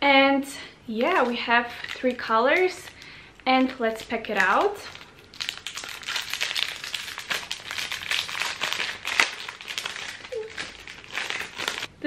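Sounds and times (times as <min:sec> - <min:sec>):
plastic packaging crinkling: 0:01.0 - 0:11.9.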